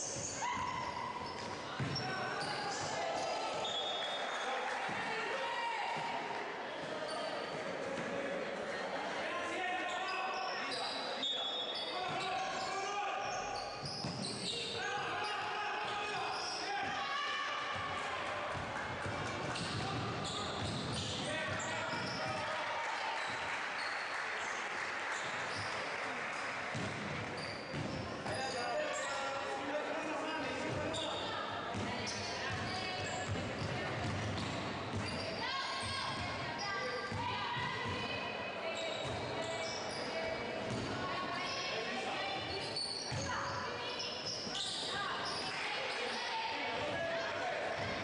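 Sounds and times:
voices in a hall: 0.0 - 48.0.

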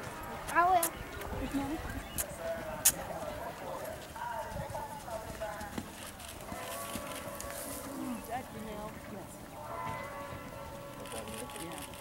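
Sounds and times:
faint voices talking: 0.0 - 12.0
horse hoofbeats on dirt: 0.0 - 12.0.

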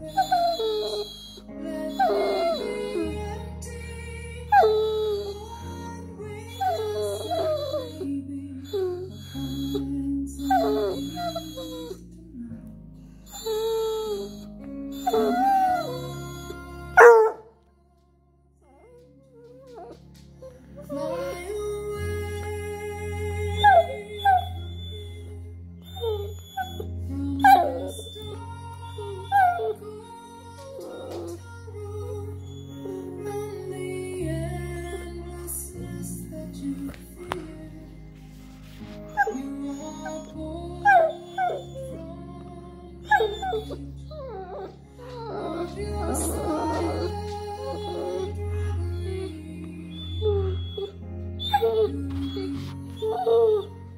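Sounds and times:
dog whining: 0.0 - 3.4, 4.5 - 5.7, 6.4 - 12.0, 13.3 - 17.5, 18.6 - 21.5, 23.4 - 33.4, 39.0 - 42.2, 43.0 - 53.9
background music: 0.0 - 53.9
dog barking: 16.9 - 17.5.

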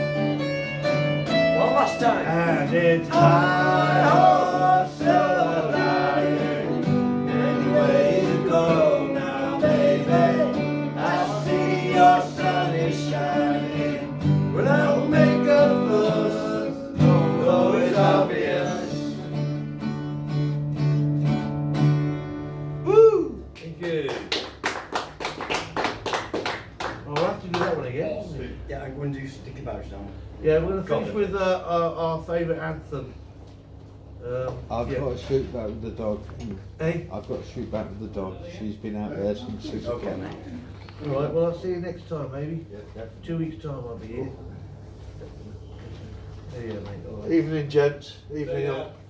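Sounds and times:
acoustic guitars strummed: 0.0 - 23.6
men singing: 1.6 - 19.3
people clapping: 23.5 - 28.0.

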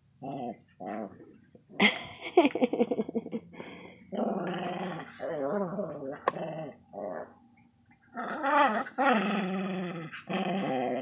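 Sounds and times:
small dog growling: 0.2 - 1.8, 4.1 - 7.4, 8.1 - 11.0.

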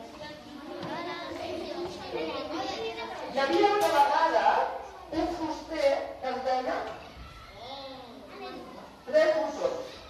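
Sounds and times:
faint children chattering: 0.0 - 10.0.

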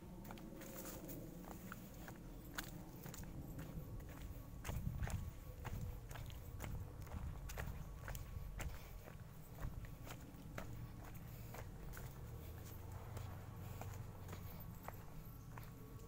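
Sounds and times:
footsteps on dirt path: 0.0 - 16.0.

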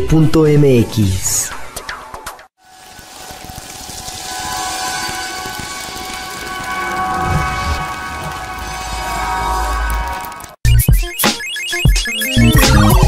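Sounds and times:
rain-like hiss: 2.6 - 10.0
held synthesizer tones: 11.6 - 13.0.

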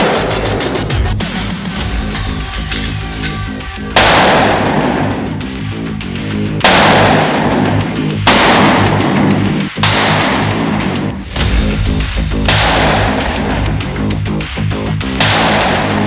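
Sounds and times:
background music: 0.0 - 16.0
loud pistol shots: 4.0 - 5.4, 6.6 - 10.8, 12.5 - 13.6, 15.2 - 16.0.

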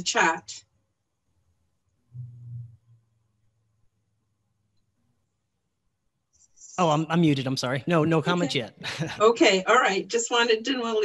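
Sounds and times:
man humming: 2.2 - 2.8, 6.8 - 9.2.

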